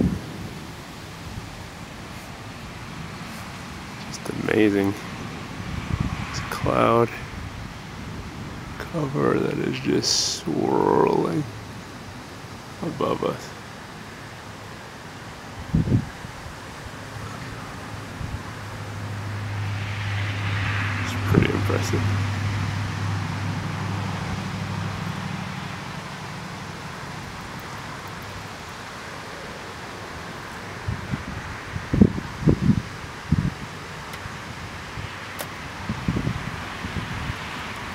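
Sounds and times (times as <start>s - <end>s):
rush of wind: 0.0s - 37.9s.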